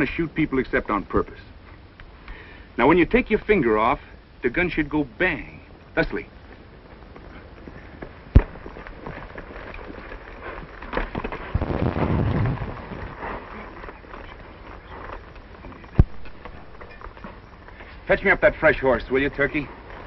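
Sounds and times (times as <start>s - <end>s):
rough commotion: 6.5s - 20.0s
gunshots: 8.4s - 8.8s.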